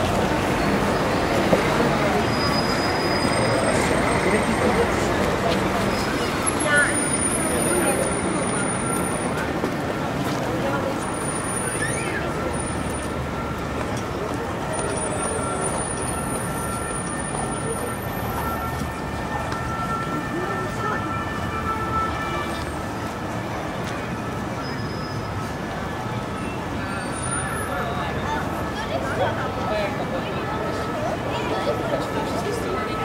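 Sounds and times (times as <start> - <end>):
many voices talking: 0.0 - 33.0
passing traffic: 0.0 - 33.0.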